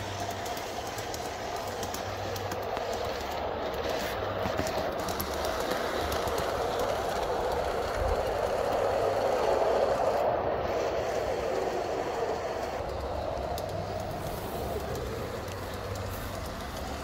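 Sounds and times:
model train motor humming: 0.0s - 17.0s
wheels rolling over rails: 0.0s - 17.0s.

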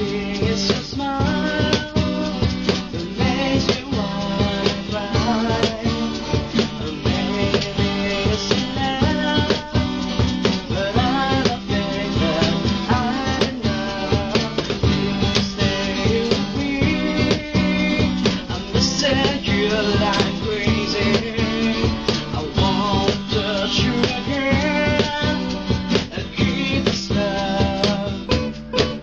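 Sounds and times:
acoustic band music with guitar: 0.0s - 29.0s.

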